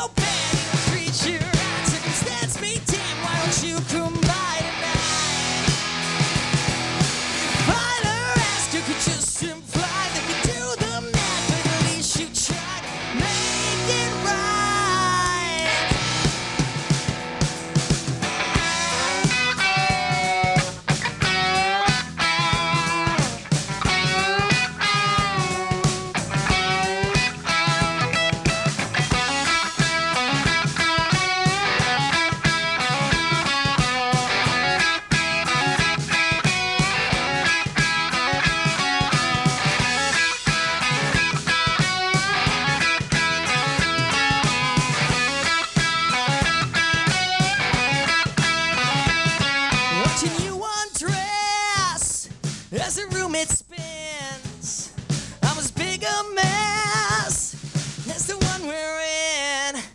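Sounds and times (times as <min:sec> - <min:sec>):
distorted electric guitars: 0:00.0 - 0:58.8
bass guitar: 0:00.0 - 0:59.9
drum kit: 0:00.0 - 0:59.9
lead guitar bending notes: 0:04.6 - 0:07.7, 0:12.8 - 0:50.4.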